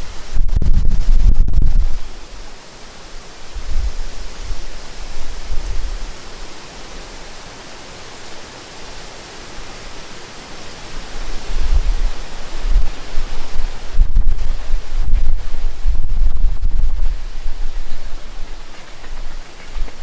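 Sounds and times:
wind gusts buffeting microphone: 0:00.0 - 0:02.6, 0:03.4 - 0:06.5, 0:10.6 - 0:20.0
wind in the trees: 0:00.0 - 0:20.0.

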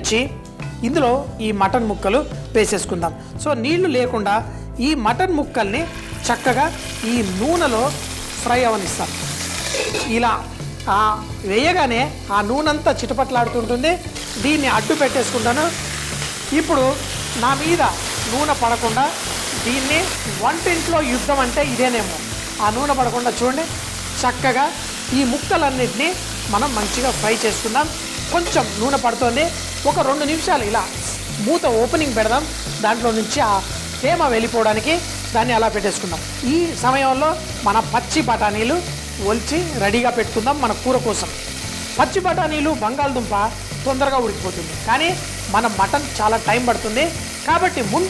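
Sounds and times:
background music with melody: 0:00.0 - 0:48.0
meat sizzling in hot oil: 0:05.5 - 0:48.0.

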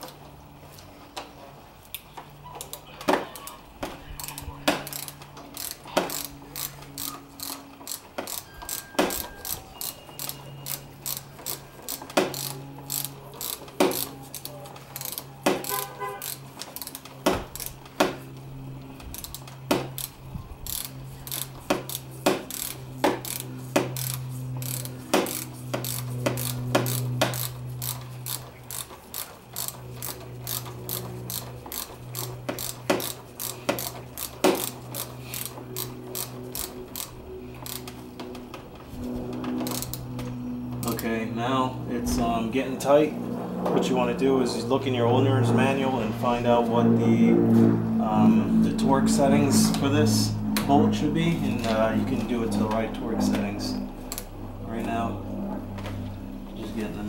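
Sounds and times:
ratchet wrench clicking: 0:04.2 - 0:18.0, 0:19.0 - 0:38.0, 0:39.6 - 0:40.0.

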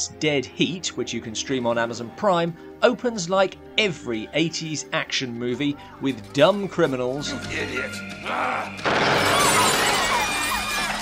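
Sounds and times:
film music: 0:00.0 - 0:11.0
glass shattering: 0:08.8 - 0:11.0.

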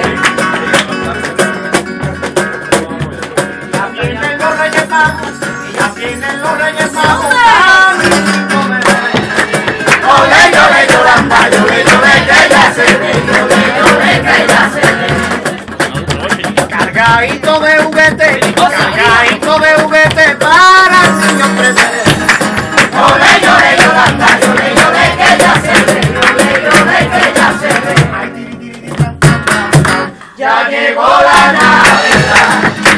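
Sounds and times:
guitar: 0:00.0 - 0:32.9
rhythmic percussive beat: 0:00.0 - 0:32.9
group singing a carol: 0:04.2 - 0:15.7, 0:17.0 - 0:28.8, 0:30.3 - 0:32.9.

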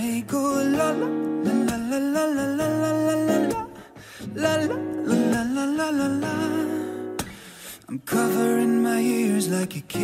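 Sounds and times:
guitar backing: 0:00.0 - 0:10.0
person singing pop song: 0:00.0 - 0:10.0.

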